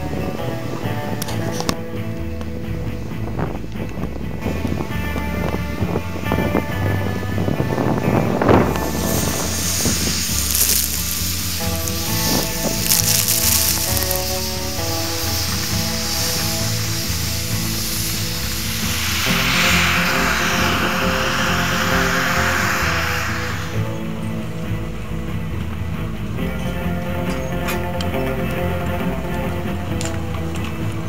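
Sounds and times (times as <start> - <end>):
background music: 0.0 - 31.0
steady hiss: 8.4 - 24.7.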